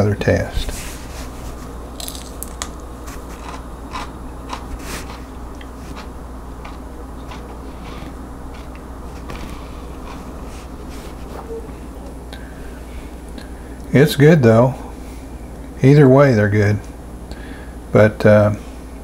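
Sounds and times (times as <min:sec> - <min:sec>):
steady low hum: 0:00.0 - 0:19.0
person chewing raw pepper: 0:02.0 - 0:10.4.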